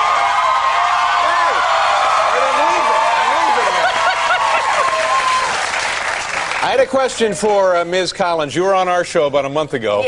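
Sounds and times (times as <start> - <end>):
audience applauding: 0.0 - 7.7.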